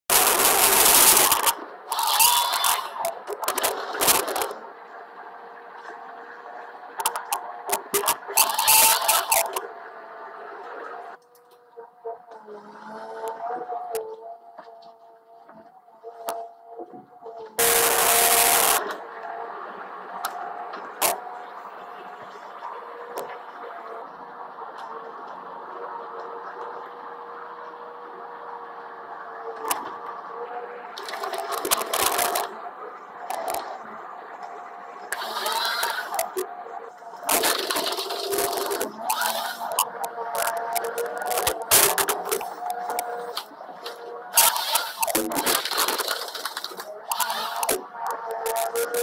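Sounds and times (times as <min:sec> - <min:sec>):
harvester machine drone: 0:00.0 - 0:49.0
harvester head cutting trees: 0:00.1 - 0:49.0.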